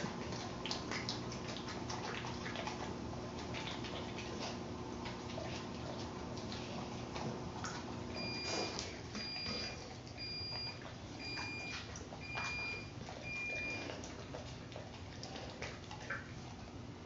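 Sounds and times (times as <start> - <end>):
dog crunching and chewing: 0.0 - 17.0.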